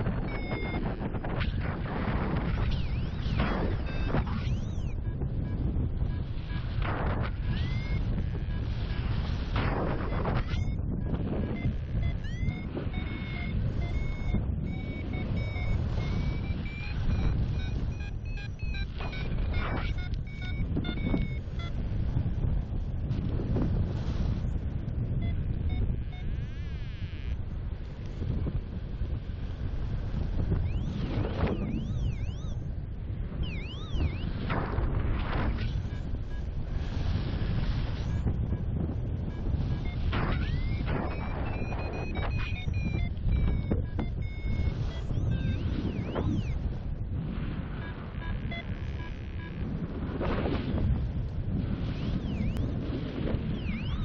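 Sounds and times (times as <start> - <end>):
short electronic beeps: 0.0 - 22.1, 25.1 - 27.4, 30.2 - 46.8, 47.7 - 49.7, 51.8 - 52.8, 53.4 - 54.0
wind rushing over microphone: 0.0 - 54.0
rising and falling chirps: 7.5 - 8.0, 12.0 - 21.7, 31.6 - 32.6, 33.4 - 34.3, 39.8 - 46.6.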